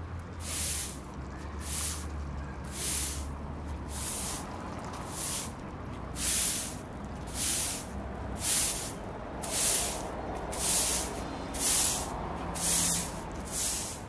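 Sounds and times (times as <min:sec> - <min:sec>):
stiff broom sweeping asphalt: 0:00.3 - 0:14.0.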